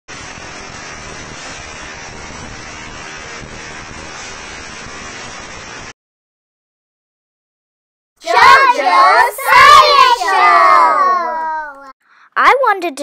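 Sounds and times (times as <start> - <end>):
tesla coil electrical discharge: 0.1 - 6.0.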